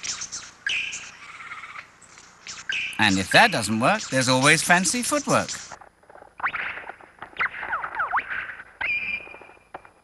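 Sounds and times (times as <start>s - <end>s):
lyrebird singing: 0.0s - 9.7s.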